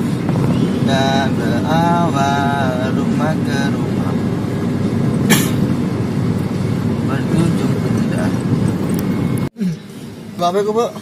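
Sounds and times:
car cabin road and engine noise: 0:00.0 - 0:11.0.

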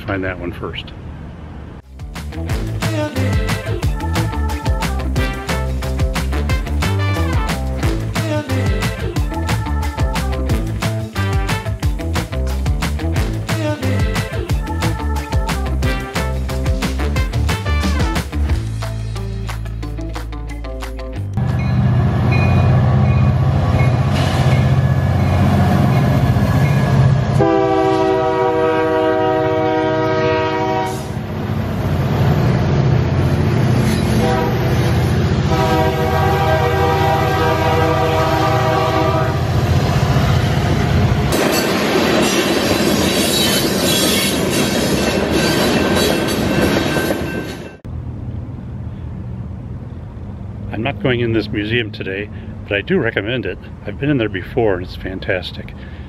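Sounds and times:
diesel locomotives rumbling: 0:00.0 - 0:56.0
street sound: 0:00.0 - 0:56.0
multi-tone train air horn: 0:05.2 - 0:07.7, 0:27.4 - 0:31.3, 0:34.1 - 0:39.5
rail cars rolling by: 0:21.3 - 0:52.0.

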